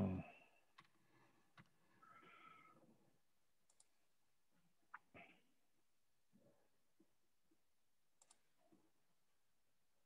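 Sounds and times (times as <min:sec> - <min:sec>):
faint clicks: 0:08.2 - 0:08.5.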